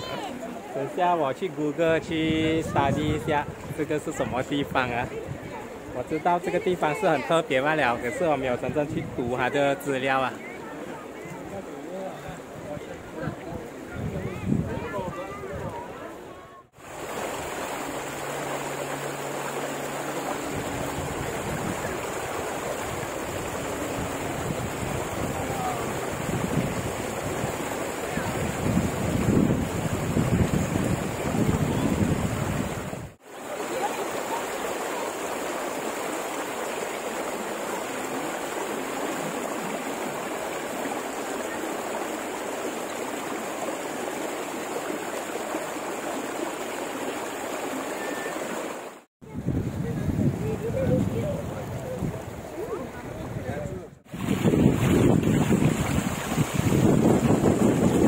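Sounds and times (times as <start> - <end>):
water rushing down a channel: 0.0 - 58.0
wind gusting on microphone: 1.9 - 6.0, 12.4 - 16.0, 20.4 - 33.2, 49.2 - 58.0.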